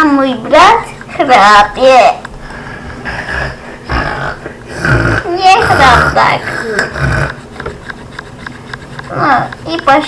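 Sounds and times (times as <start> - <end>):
child snoring loudly: 2.9 - 7.4.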